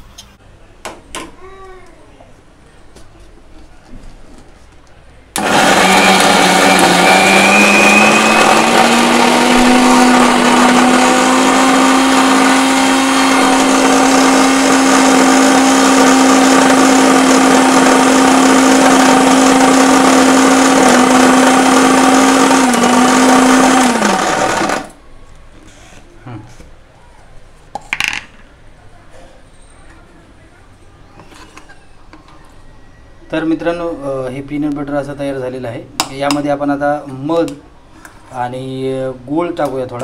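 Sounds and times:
mixer grinder motor running: 0:05.4 - 0:25.0.

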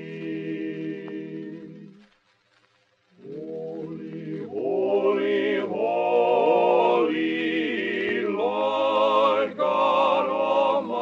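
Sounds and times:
male voices singing in harmony: 0:00.0 - 0:02.0, 0:03.2 - 0:11.0.

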